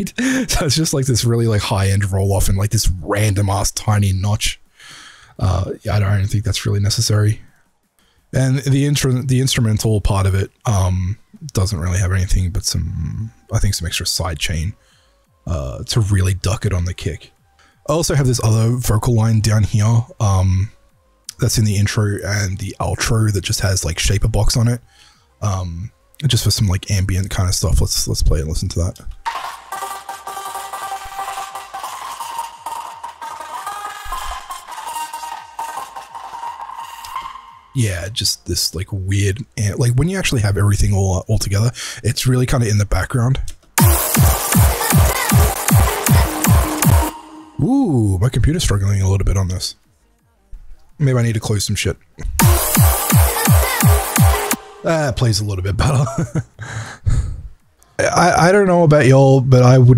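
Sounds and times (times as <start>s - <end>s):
man laughing breathily: 0.0s - 0.7s, 55.8s - 57.5s.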